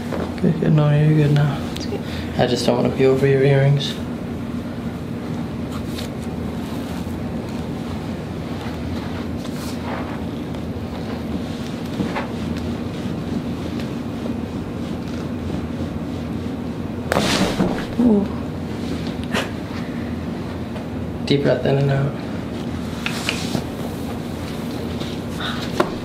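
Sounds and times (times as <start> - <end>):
steady hum and hiss: 0.0 - 26.0.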